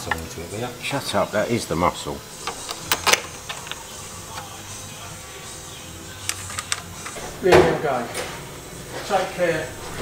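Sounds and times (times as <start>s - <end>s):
steady low hum: 0.0s - 10.0s
metal parts clicking and knocking: 2.5s - 3.8s, 6.3s - 7.2s.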